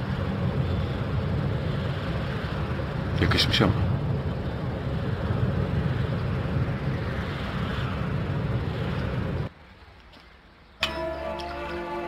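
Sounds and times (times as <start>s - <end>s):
car cabin road and engine rumble: 0.0s - 9.5s.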